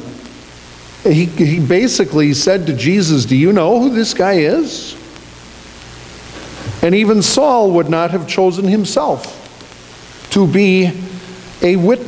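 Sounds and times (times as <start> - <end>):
steady room tone hiss: 0.0 - 12.0
man speaking: 1.0 - 5.0, 6.8 - 9.4, 10.3 - 12.0.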